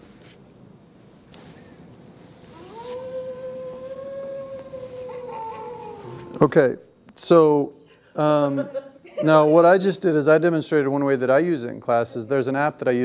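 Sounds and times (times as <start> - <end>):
recorded howl alarm: 2.5 - 6.5.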